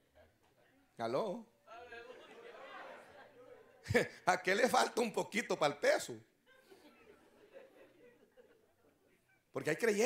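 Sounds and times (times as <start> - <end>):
man talking: 1.0 - 2.2, 3.8 - 6.2, 9.5 - 10.0
congregation murmuring and chuckling: 1.7 - 4.6, 6.4 - 9.5.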